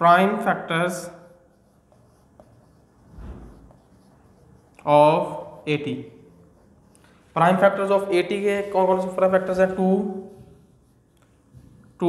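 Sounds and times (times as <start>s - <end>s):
marker writing on a whiteboard: 0.0s - 12.0s.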